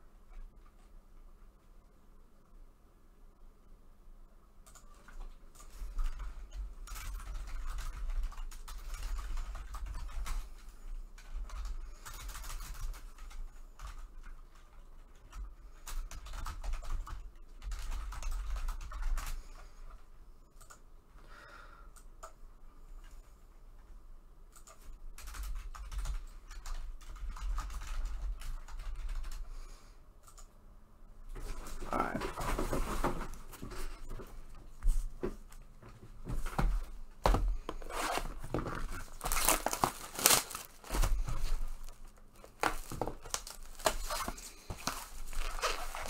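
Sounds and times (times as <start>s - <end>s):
computer keyboard typing: 4.6s - 19.6s, 20.6s - 20.8s, 24.5s - 29.5s, 30.2s - 30.6s.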